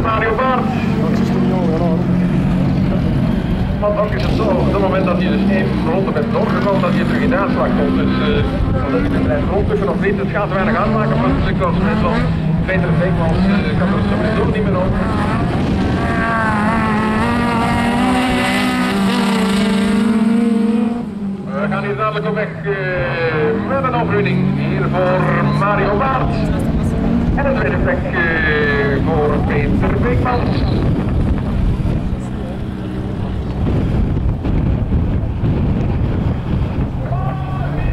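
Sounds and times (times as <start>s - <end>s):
engines droning: 0.0s - 37.9s.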